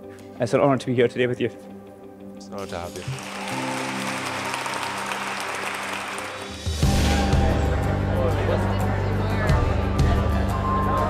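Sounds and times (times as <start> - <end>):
background music: 0.0 - 11.0
people clapping: 2.6 - 7.7.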